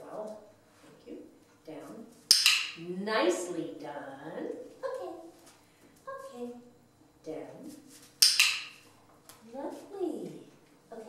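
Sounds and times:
sharp click: 2.3 - 2.8, 8.2 - 9.4.

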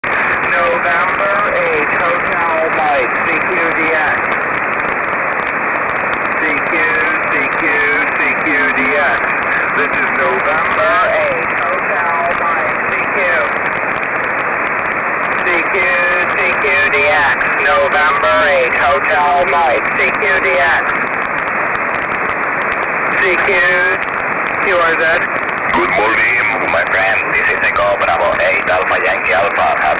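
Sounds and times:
garbled radio voices: 0.0 - 29.9
radio static hiss: 0.0 - 29.9.

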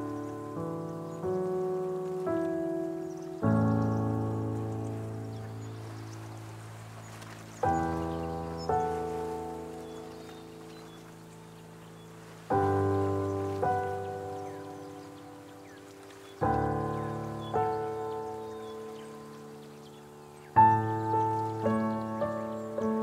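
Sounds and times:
slow solo piano chords: 0.0 - 23.0.

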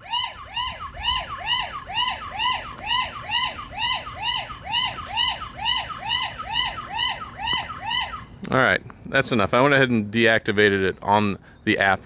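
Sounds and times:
sweeping alarm siren: 0.0 - 8.4.

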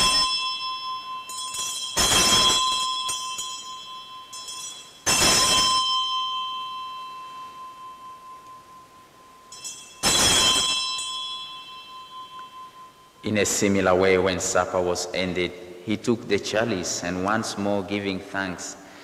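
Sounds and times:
altar bells ringing: 0.0 - 18.0.

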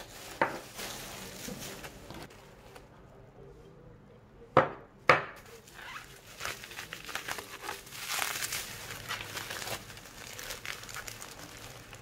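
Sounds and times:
bubble wrap crinkling: 0.0 - 2.9, 5.4 - 12.0.

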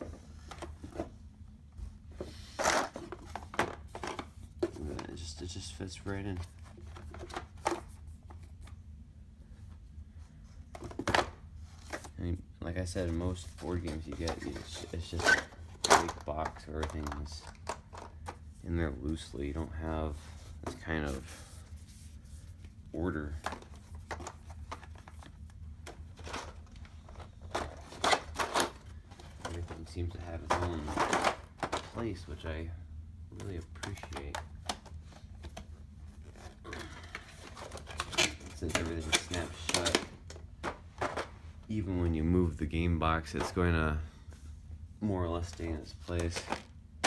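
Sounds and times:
cardboard rustling and scraping: 12.9 - 25.4.

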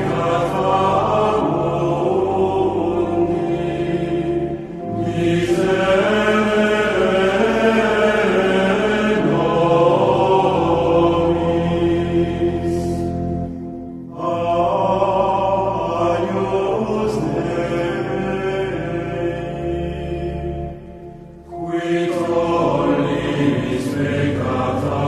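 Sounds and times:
sung chant: 0.0 - 25.0.

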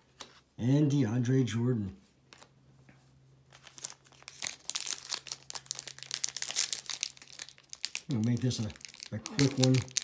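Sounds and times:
foil wrapper tearing and crinkling: 3.6 - 10.0.

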